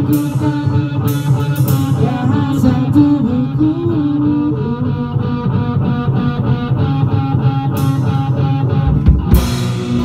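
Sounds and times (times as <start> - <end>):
bass guitar: 0.0 - 10.0
electric guitar: 0.0 - 10.0
cymbal crash: 9.4 - 10.0.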